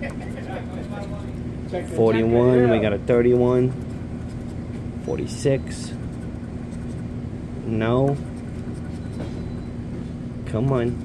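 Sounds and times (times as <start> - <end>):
steady low hum: 0.0 - 11.0
pencil scraping scratch-off ticket: 0.1 - 1.3, 5.9 - 7.1, 8.1 - 9.7.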